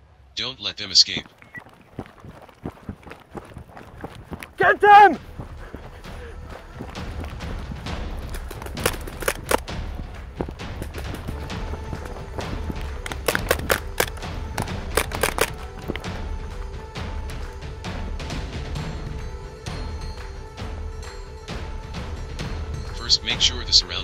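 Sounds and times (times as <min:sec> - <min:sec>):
footsteps: 0:00.9 - 0:17.8
background music: 0:04.0 - 0:24.0
paintball marker shots: 0:08.3 - 0:10.0.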